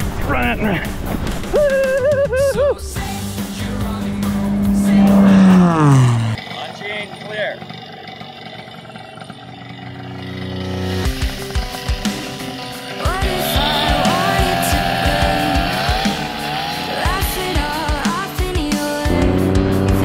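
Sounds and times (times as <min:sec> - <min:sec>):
music: 0:00.0 - 0:06.4, 0:09.7 - 0:20.0
plane passing low and fast: 0:03.2 - 0:06.4.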